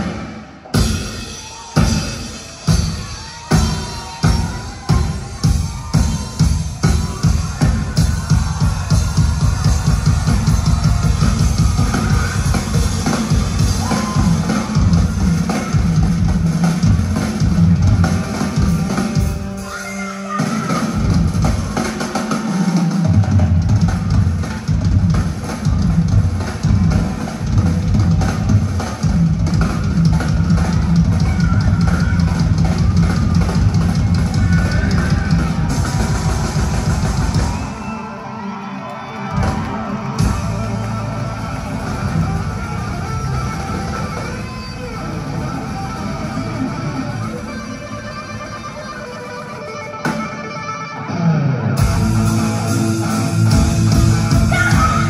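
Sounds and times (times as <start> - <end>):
drum kit: 0.0 - 49.1, 51.7 - 55.0
live band music: 0.0 - 55.0
electric guitar: 25.9 - 55.0.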